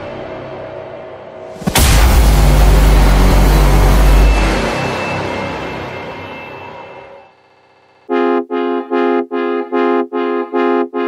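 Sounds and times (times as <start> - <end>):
deep cinematic boom rumble: 1.6 - 4.6.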